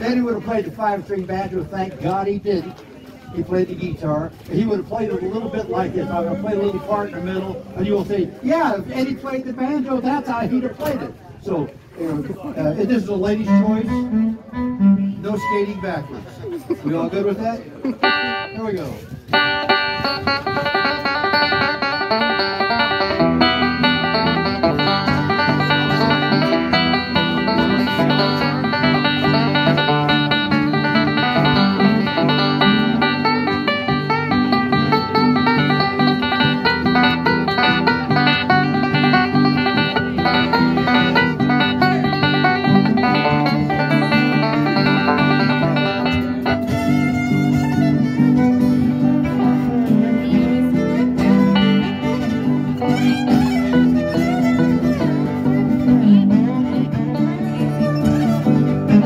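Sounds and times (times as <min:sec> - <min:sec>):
acoustic band backing: 0:00.0 - 0:59.0
banjo picking: 0:11.9 - 0:59.0
fiddle: 0:12.0 - 0:59.0
bass line: 0:13.2 - 0:16.3, 0:19.3 - 0:59.0.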